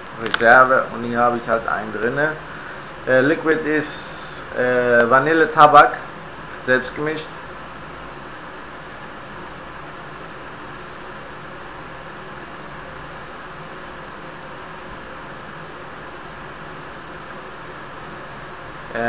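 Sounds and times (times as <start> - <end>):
steady background hiss: 0.0 - 19.0.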